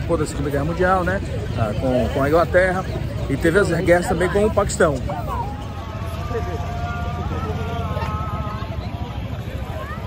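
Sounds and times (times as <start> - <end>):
low rumble of traffic and crowd: 0.0 - 10.0.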